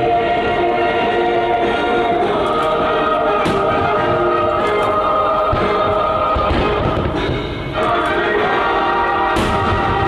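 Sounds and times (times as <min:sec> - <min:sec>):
choir singing with instruments: 0:00.0 - 0:10.0.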